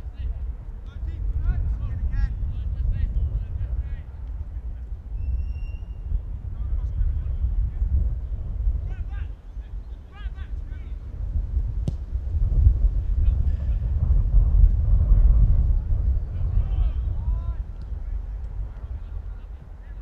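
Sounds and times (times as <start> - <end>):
wind buffeting microphone: 0.0 - 20.0
distant shouts of players: 8.8 - 11.0, 16.4 - 18.2.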